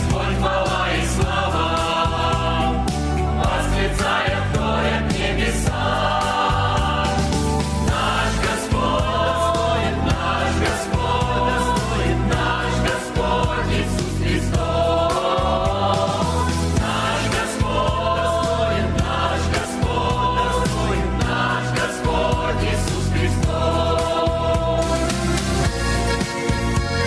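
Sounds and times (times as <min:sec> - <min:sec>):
choir singing in harmony: 0:00.0 - 0:25.8
keyboard accompaniment with bass: 0:00.0 - 0:27.0.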